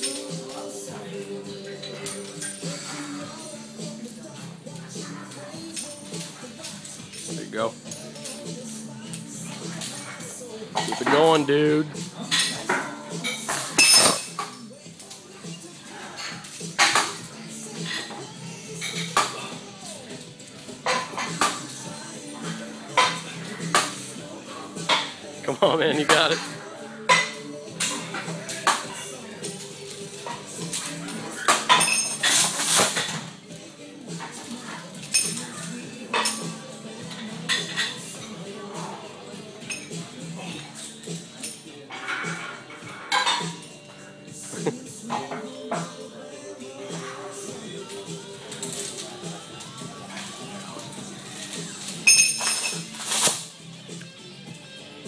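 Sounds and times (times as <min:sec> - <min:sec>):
steel chains clanking: 0:00.0 - 0:11.5, 0:12.2 - 0:25.0, 0:26.1 - 0:33.3, 0:34.2 - 0:38.4, 0:46.9 - 0:53.6
background music: 0:00.0 - 0:55.0.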